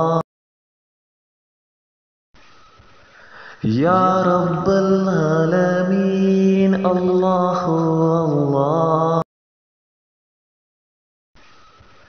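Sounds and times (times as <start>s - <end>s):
person chanting: 0.0s - 0.2s, 3.5s - 9.3s.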